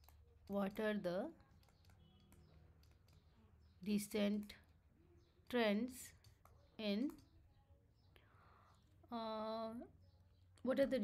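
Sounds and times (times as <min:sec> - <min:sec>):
woman speaking: 0:00.5 - 0:01.4, 0:03.8 - 0:04.6, 0:06.8 - 0:07.2, 0:09.0 - 0:10.0, 0:10.6 - 0:11.0.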